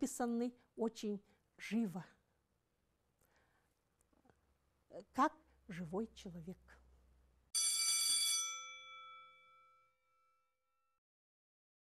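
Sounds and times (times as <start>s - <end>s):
bell chime ringing: 7.6s - 11.0s.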